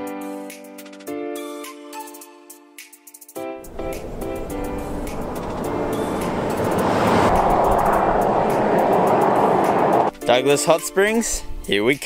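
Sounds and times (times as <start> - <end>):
background music: 0.0 - 12.0
vehicle passing on highway: 3.6 - 10.2.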